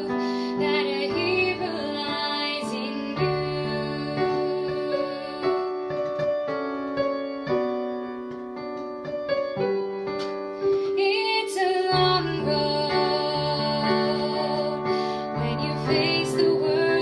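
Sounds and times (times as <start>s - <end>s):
woman singing a pop ballad: 0.0s - 6.1s, 10.8s - 17.0s
electronic keyboard piano chords: 0.0s - 17.0s.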